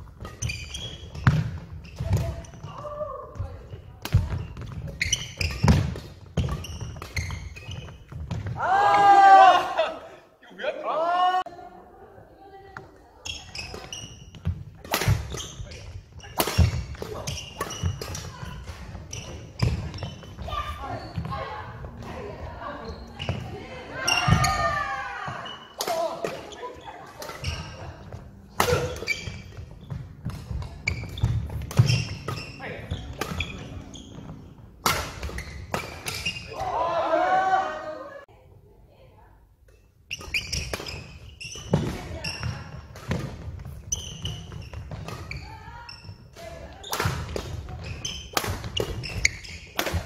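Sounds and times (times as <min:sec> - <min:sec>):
players shouting: 0:08.6 - 0:10.1, 0:36.5 - 0:38.3
racket striking shuttlecock: 0:14.8 - 0:15.4, 0:16.3 - 0:19.0, 0:28.5 - 0:29.4, 0:30.2 - 0:32.4, 0:34.8 - 0:36.4, 0:48.2 - 0:50.0.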